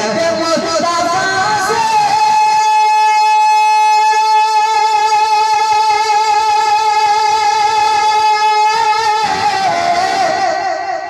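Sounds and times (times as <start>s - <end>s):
man singing long high note: 0.0s - 11.0s.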